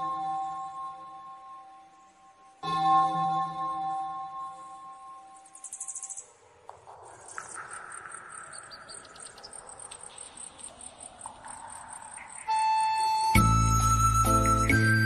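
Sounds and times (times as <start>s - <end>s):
music: 0.0s - 5.8s, 12.2s - 15.0s
insect chirping: 0.0s - 14.8s
insect trill: 3.0s - 14.5s.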